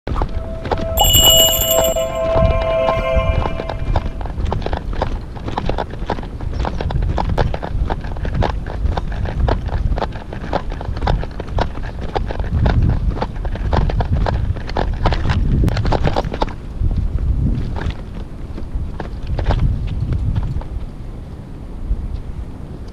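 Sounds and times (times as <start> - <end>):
chime of held tones: 0.1 - 4.4
wind rumbling on microphone: 6.5 - 22.9.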